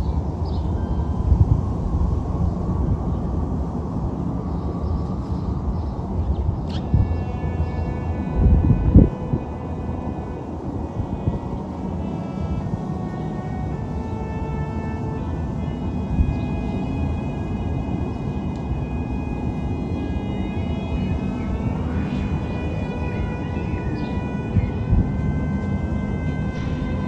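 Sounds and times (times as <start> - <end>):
distant aircraft engine droning: 0.0 - 27.0
low outdoor rumble: 0.0 - 27.0.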